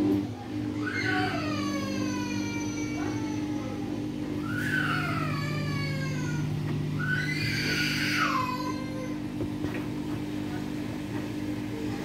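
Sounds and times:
washing machine spinning: 0.0 - 12.0.

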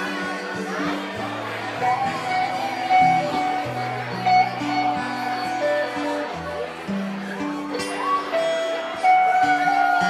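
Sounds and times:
acoustic guitar playing: 0.0 - 10.0
electric guitar playing: 0.0 - 10.0.

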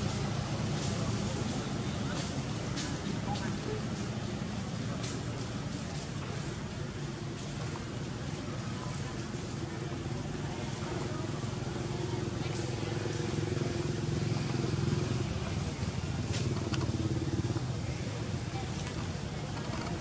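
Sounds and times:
engine running: 0.0 - 20.0.

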